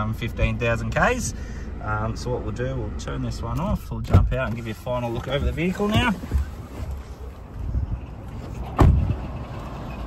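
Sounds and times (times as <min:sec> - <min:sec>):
car door slamming: 0:08.7 - 0:09.2.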